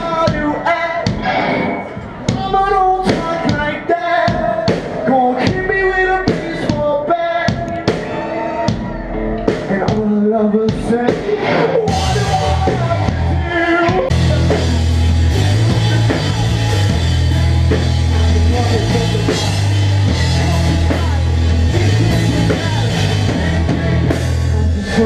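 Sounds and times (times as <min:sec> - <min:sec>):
drums: 0:00.0 - 0:25.0
person singing: 0:02.2 - 0:23.7
electric guitars: 0:07.6 - 0:25.0.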